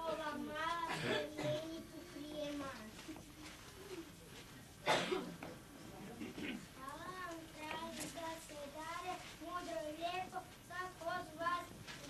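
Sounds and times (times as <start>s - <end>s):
child singing: 6.8s - 12.0s.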